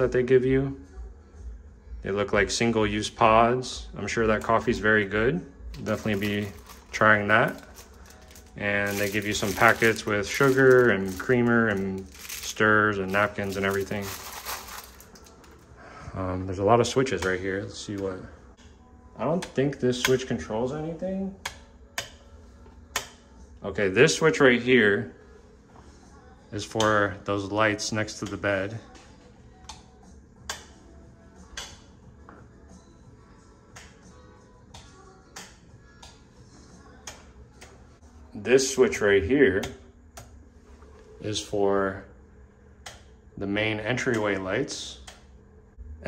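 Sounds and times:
sugar packets rustling: 0:05.8 - 0:15.6.

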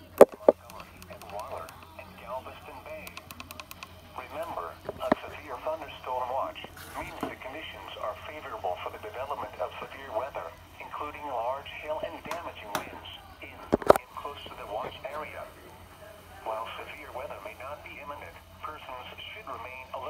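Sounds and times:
radio voice from speaker: 0:00.0 - 0:20.0
steady low hum: 0:00.0 - 0:20.0.

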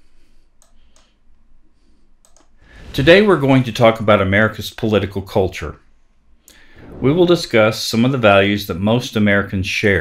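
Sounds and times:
room hum: 0:00.0 - 0:10.0
faint sharp clicks: 0:00.6 - 0:01.2, 0:02.2 - 0:02.6.

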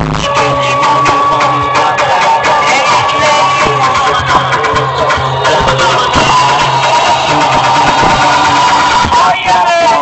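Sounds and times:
loud music through loudspeakers: 0:00.0 - 0:10.0.

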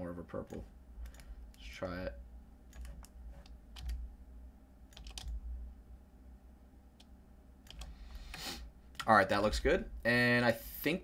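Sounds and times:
steady low hum: 0:00.0 - 0:11.0
keyboard and mouse clicks: 0:00.4 - 0:01.6, 0:02.7 - 0:04.0, 0:04.9 - 0:05.4, 0:07.0 - 0:09.1.

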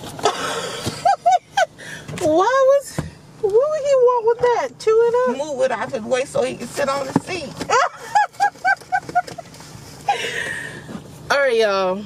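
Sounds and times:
person laughing: 0:00.2 - 0:01.9, 0:07.7 - 0:09.5.

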